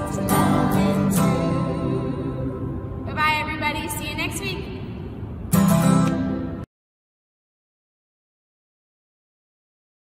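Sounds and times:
acoustic guitar strumming: 0:00.0 - 0:03.0, 0:05.5 - 0:06.6
woman's voice: 0:03.1 - 0:04.8.

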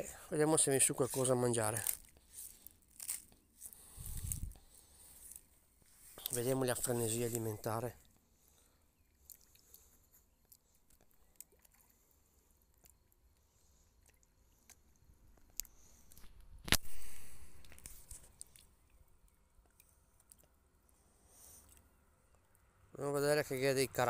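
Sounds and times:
fish clicks and pops at surface: 0:15.6 - 0:18.6.

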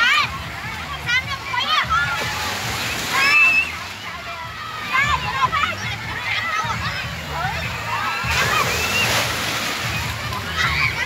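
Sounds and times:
children shouting and calling: 0:00.0 - 0:11.0
water sloshing and splashing: 0:00.0 - 0:11.0.

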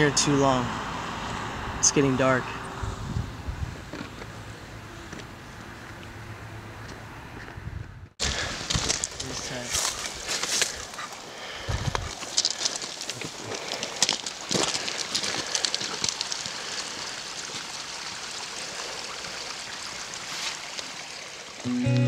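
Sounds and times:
footsteps on dirt trail: 0:06.8 - 0:16.9.

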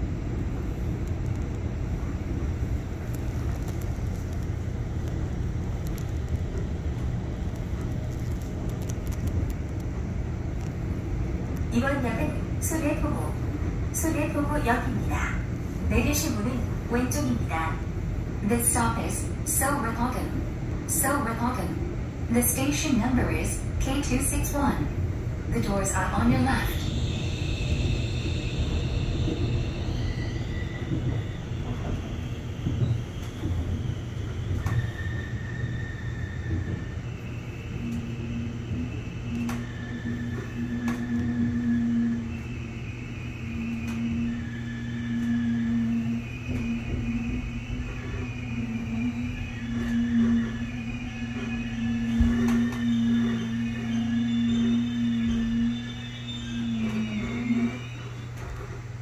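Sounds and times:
low train hum: 0:00.0 - 0:59.0
high whining brake tones: 0:26.6 - 0:58.7.

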